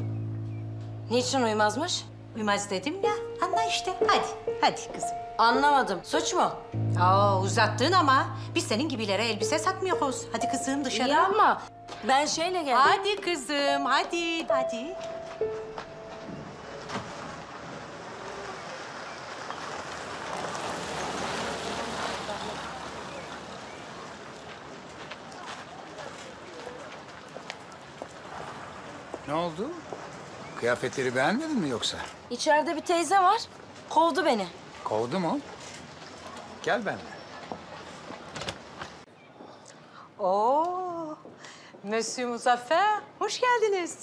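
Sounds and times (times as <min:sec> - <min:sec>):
outdoor street background: 0:00.0 - 0:44.0
pickup truck driving up: 0:15.1 - 0:25.0.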